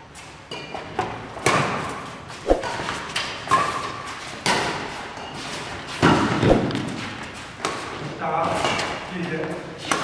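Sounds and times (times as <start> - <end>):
racket hitting shuttlecock: 0.5 - 5.0.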